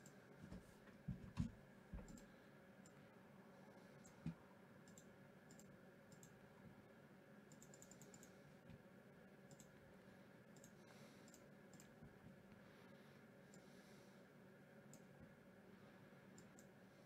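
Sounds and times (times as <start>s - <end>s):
computer mouse clicks: 1.4s - 3.0s, 4.0s - 6.4s, 7.5s - 8.8s, 9.4s - 9.8s, 10.5s - 12.0s, 14.9s - 15.1s, 16.3s - 16.8s.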